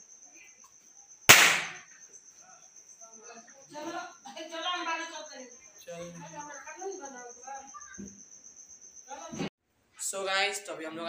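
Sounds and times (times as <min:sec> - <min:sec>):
loud firecracker bang: 0:01.3 - 0:01.8.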